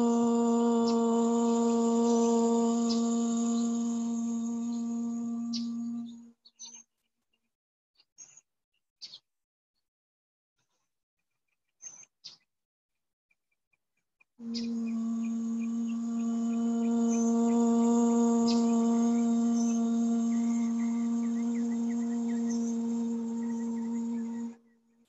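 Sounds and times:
woman humming one long note: 0:00.0 - 0:06.3, 0:14.4 - 0:24.6.

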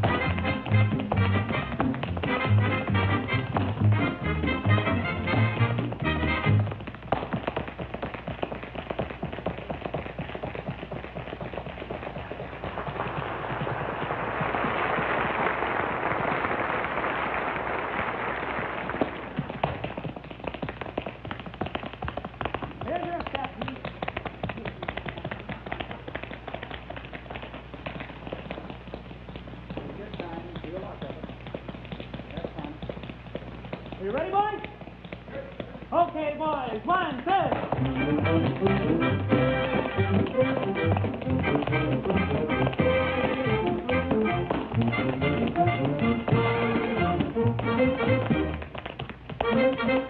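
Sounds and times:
tap shoes clicking on stage: 0:00.0 - 0:50.0
audience applause: 0:12.3 - 0:19.8.

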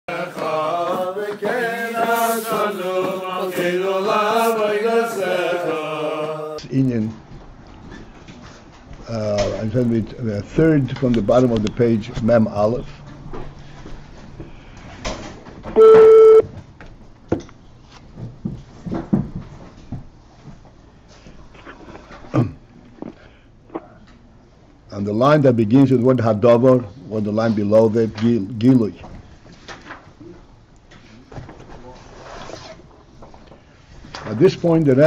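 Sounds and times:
chanted singing: 0:00.1 - 0:06.6
loud electronic beep: 0:15.8 - 0:16.4.

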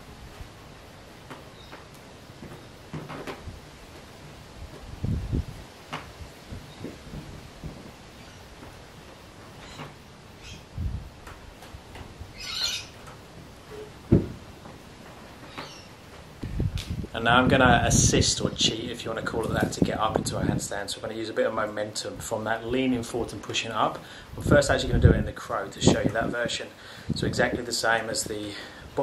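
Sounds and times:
faint bird calls: 0:09.6 - 0:10.7, 0:12.3 - 0:13.0, 0:15.4 - 0:16.0.

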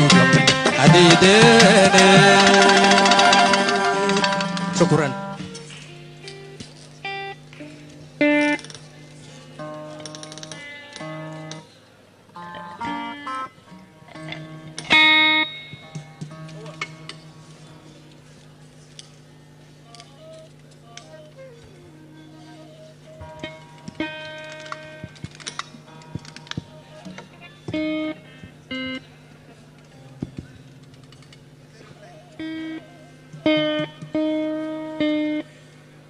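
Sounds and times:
traditional band playing: 0:00.0 - 0:06.0, 0:21.9 - 0:28.7
plucked string instrument notes: 0:00.0 - 0:11.7, 0:12.3 - 0:18.4, 0:19.1 - 0:35.7.

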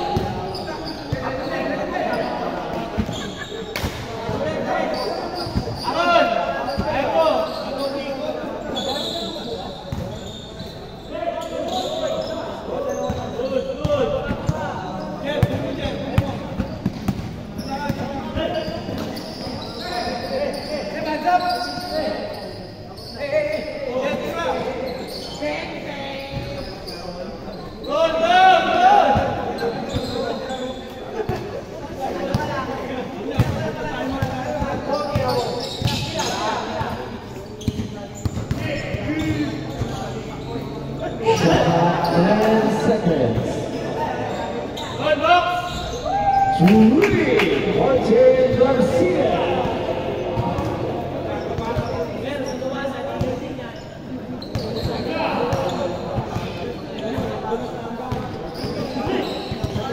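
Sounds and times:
players calling out: 0:00.1 - 0:59.9.

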